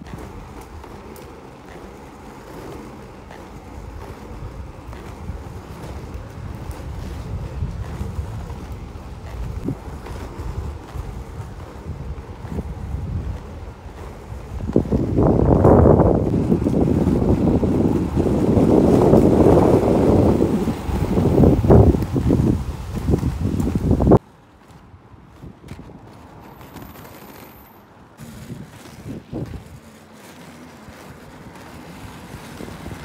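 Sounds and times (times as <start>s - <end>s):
wind buffeting microphone: 0.0s - 27.3s, 28.0s - 33.0s
skateboard wheels rolling on tarmac: 0.0s - 33.0s.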